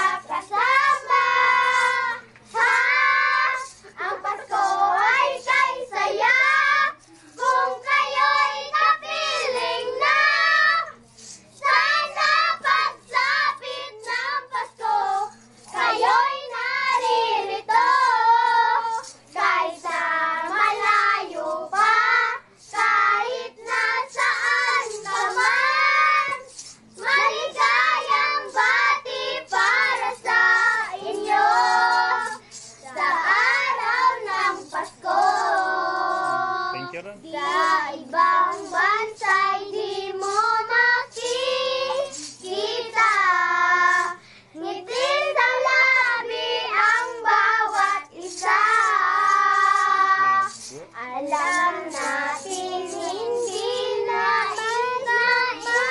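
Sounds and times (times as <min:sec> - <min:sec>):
children singing a carol: 0:00.0 - 0:55.9.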